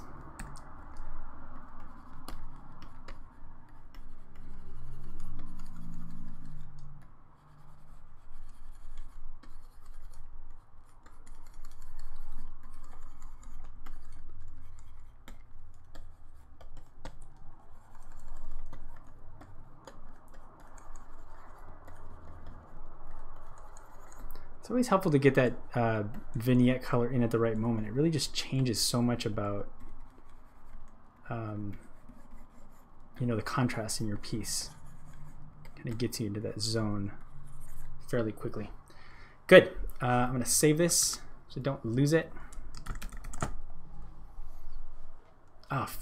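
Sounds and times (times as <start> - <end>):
stylus scratching on tablet: 0.0 - 38.9, 39.6 - 46.0.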